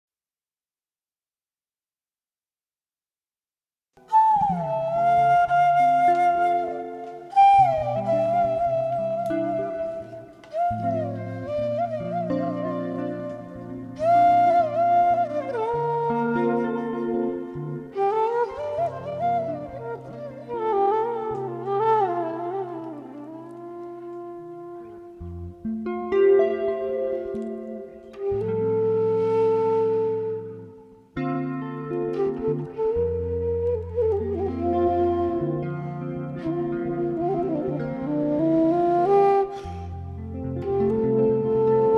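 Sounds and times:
wooden flute melody: 4.0 - 41.9
bamboo flute held note: 36.6 - 41.9.

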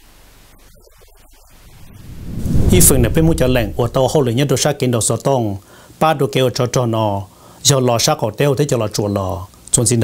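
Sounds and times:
rumble into bright whoosh: 1.6 - 4.4.

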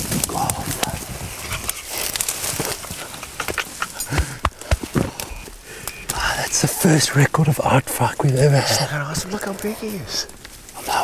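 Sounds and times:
footsteps in undergrowth: 0.0 - 6.2
twigs snapping: 0.0 - 6.4
leaves and brush rustling: 0.0 - 11.0.

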